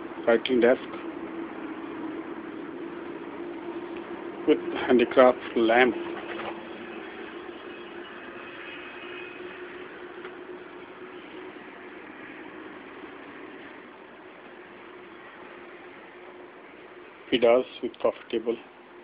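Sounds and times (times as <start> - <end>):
faint constant hum: 0.0 - 19.0.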